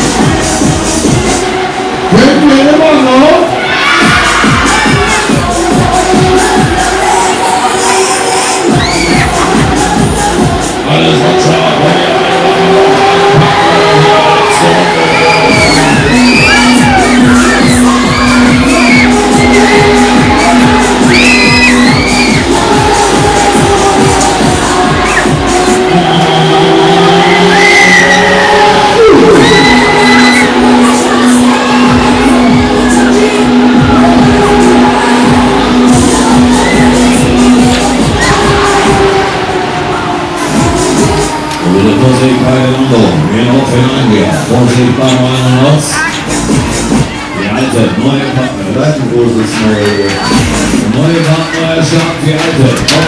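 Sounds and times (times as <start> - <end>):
loud fairground ride music: 0.0 - 53.0
riders cheering: 3.4 - 44.6, 49.2 - 53.0
riders screaming: 13.0 - 22.7, 26.0 - 33.2.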